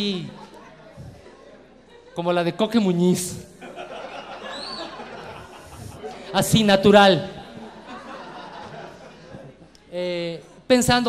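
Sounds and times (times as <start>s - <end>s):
murmur of audience: 0.0s - 11.0s.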